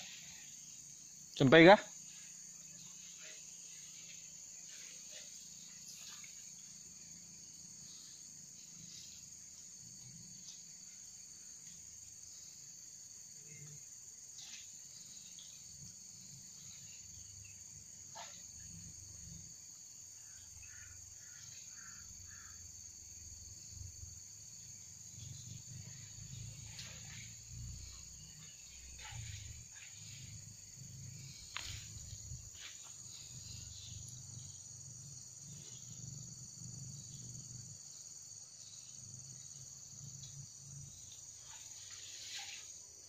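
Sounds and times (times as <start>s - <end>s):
forest insects chorus: 0.0s - 43.0s.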